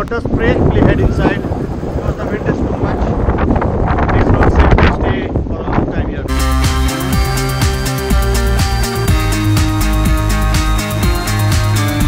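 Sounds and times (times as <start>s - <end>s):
strong wind buffeting microphone: 0.0s - 9.3s
electronic music with steady beat: 6.3s - 12.0s.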